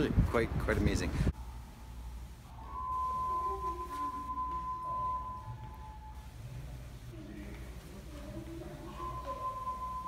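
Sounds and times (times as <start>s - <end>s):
high pure tone: 1.3s - 10.0s.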